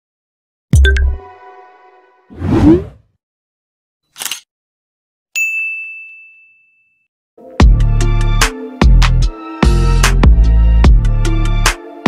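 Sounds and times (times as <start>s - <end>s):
bright bell-like ding: 5.4s - 7.0s.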